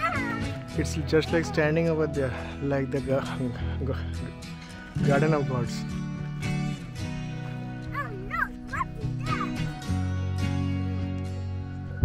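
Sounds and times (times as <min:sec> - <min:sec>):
background guitar music: 0:00.0 - 0:12.0
small dog yipping: 0:07.9 - 0:09.8.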